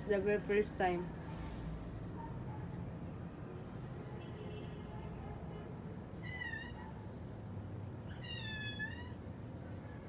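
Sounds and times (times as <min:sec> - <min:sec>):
high-pitched animal cries: 0:06.2 - 0:07.2, 0:08.1 - 0:09.2.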